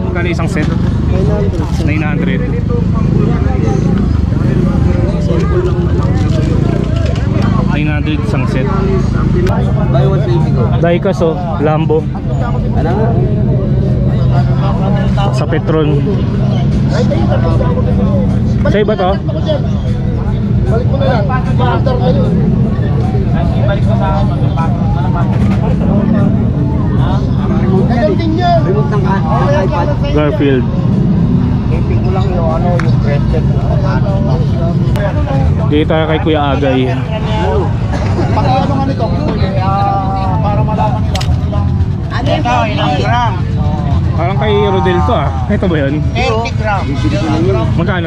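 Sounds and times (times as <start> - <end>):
low rumble of street noise: 0.0 - 48.0
people talking: 0.0 - 48.0
steady low drone: 0.0 - 48.0.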